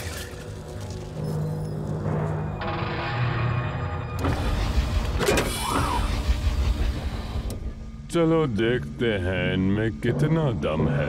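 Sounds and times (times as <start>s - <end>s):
whirring whine: 4.0s - 11.0s.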